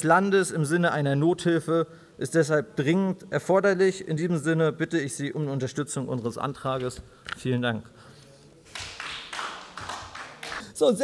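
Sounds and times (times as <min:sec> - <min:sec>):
applause in a large chamber: 0:08.6 - 0:10.8.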